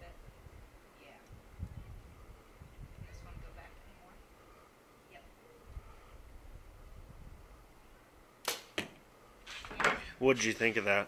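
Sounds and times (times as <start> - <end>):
bowstring snap: 8.4 - 9.0
arrow smacking target: 8.4 - 9.9.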